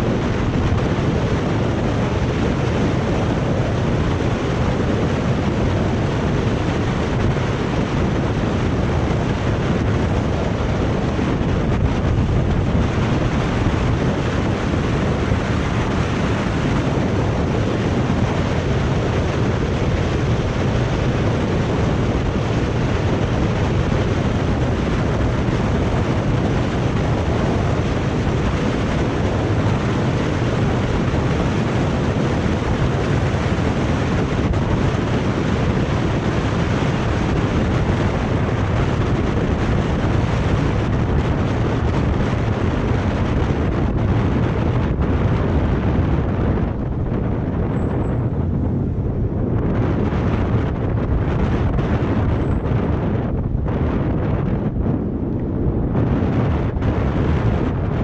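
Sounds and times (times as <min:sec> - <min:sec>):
tyres humming on asphalt: 0:00.0 - 0:58.0
wind rushing over microphone: 0:00.0 - 0:58.0.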